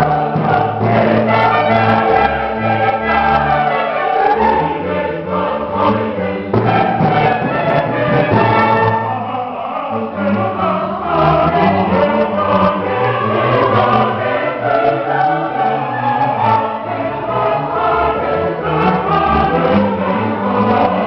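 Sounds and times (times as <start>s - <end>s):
mixed choir singing: 0.0s - 21.0s
string orchestra: 0.0s - 21.0s.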